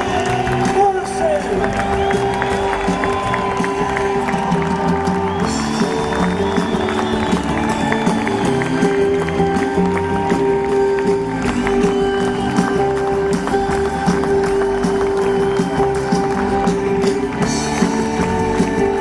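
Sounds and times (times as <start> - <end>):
drums: 0.0 - 19.0
live band playing: 0.0 - 19.0.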